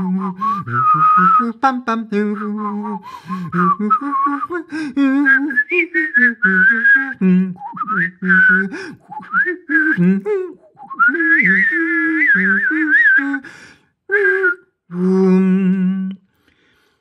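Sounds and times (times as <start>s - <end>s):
person humming a lower part: 0.0s - 13.4s, 14.1s - 16.3s
person whistling a melody: 0.0s - 13.5s, 14.1s - 16.2s.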